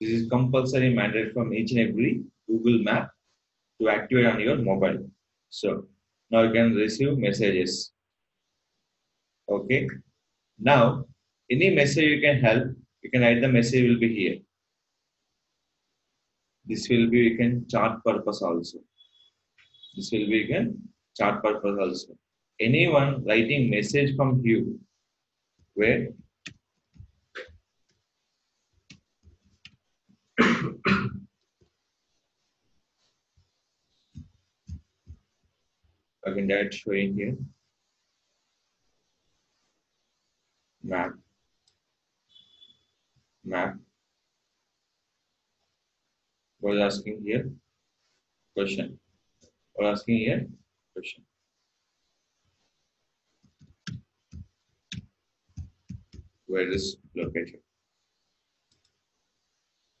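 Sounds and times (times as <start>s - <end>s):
person coughing: 30.4s - 31.2s.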